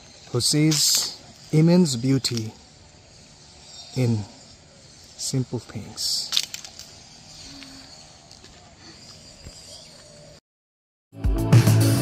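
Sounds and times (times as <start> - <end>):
faint outdoor ambience: 0.0 - 10.4.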